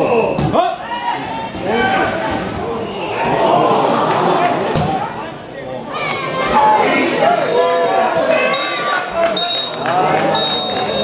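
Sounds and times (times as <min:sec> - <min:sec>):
players and spectators shouting: 0:00.0 - 0:11.0
referee's whistle blasts: 0:08.5 - 0:11.0.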